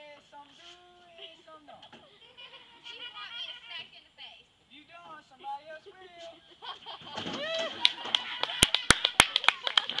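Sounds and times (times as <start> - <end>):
small audience applause: 7.7 - 10.0.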